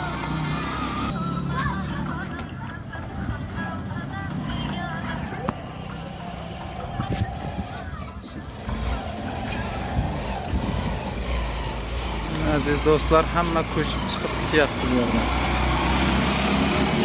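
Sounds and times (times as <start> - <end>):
motorcycle engine rumble: 0.0 - 17.0.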